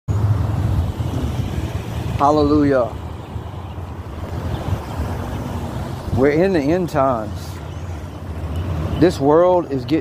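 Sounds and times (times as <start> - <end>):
road traffic: 0.1 - 10.0
wind buffeting microphone: 0.2 - 9.4.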